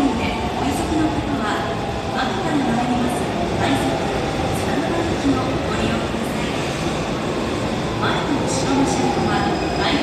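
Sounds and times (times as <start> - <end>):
subway train rumbling: 0.0 - 10.0.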